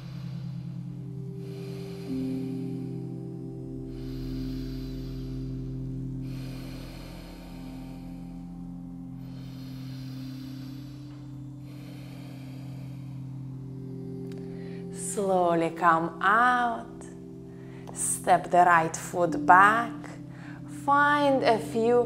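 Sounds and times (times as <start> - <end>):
low drone tones: 0.0 - 22.0.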